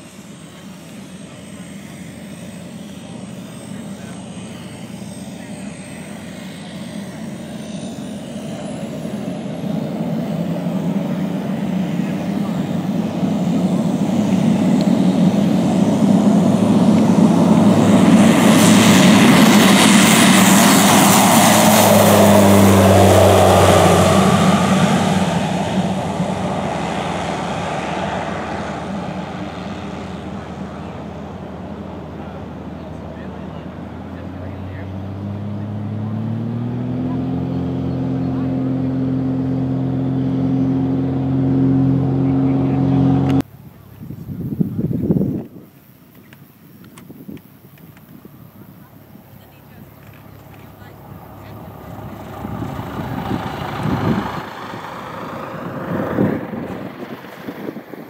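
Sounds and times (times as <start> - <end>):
propeller plane taking off: 0.0 - 58.0.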